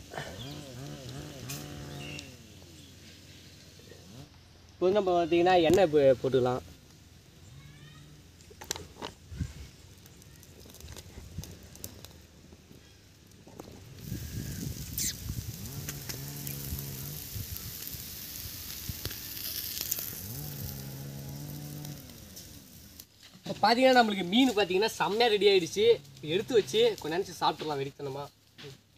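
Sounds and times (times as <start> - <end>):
fish sizzling on a grill: 0.0 - 4.2, 4.8 - 28.9
farm animal lowing: 0.0 - 4.4, 13.5 - 17.8, 18.7 - 22.8.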